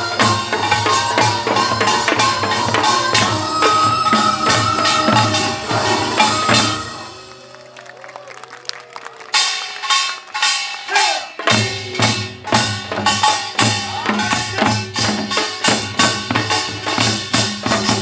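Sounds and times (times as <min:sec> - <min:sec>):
metallic percussion: 0:00.0 - 0:07.4, 0:09.3 - 0:18.0
drums striking steady rhythm: 0:00.0 - 0:07.5, 0:09.2 - 0:18.0
deep drum beats: 0:11.4 - 0:18.0.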